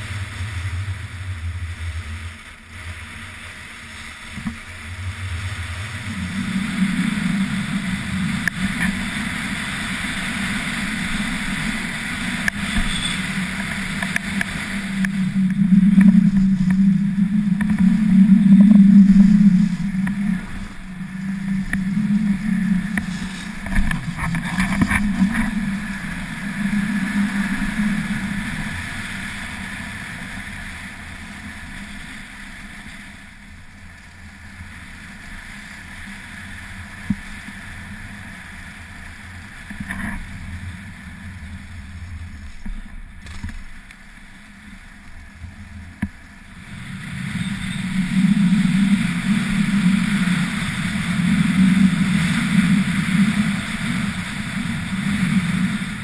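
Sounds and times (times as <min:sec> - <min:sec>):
skis scraping over snow: 0:00.0 - 0:56.0
wind rushing on microphone: 0:00.0 - 0:56.0.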